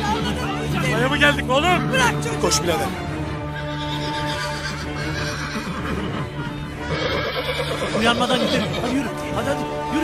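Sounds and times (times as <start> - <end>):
background music with held tones: 0.0 - 10.0
horse whinnying: 3.5 - 9.0.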